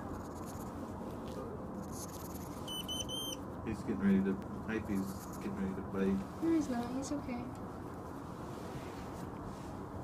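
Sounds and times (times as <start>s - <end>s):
hedgehog chirping: 1.8s - 3.4s.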